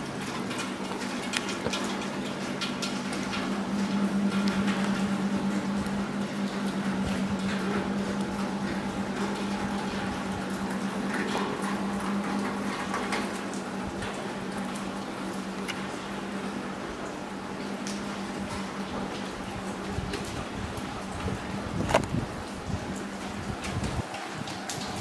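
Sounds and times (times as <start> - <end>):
steady low hum: 0.0 - 24.0
rain dripping: 0.0 - 25.0
water running on stone: 0.0 - 25.0.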